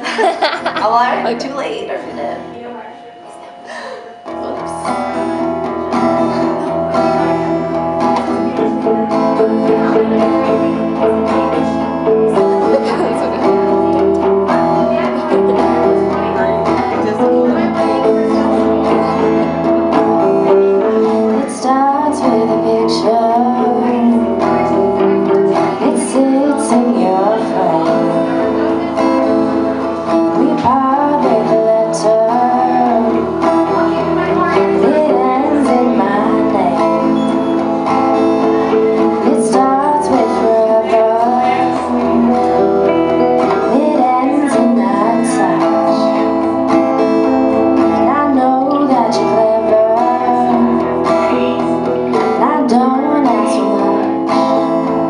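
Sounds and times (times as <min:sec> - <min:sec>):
acoustic guitar strumming: 0:00.0 - 0:55.0
electric guitar lead lines: 0:00.0 - 0:55.0.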